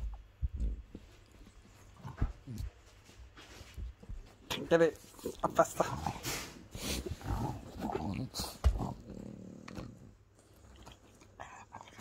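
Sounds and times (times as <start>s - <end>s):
dog grunting: 5.1s - 10.8s.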